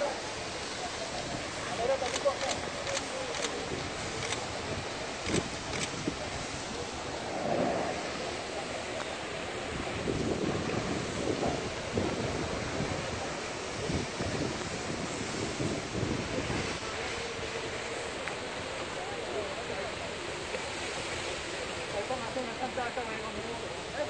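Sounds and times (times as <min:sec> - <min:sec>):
fire hoses spraying water: 0:00.0 - 0:24.0.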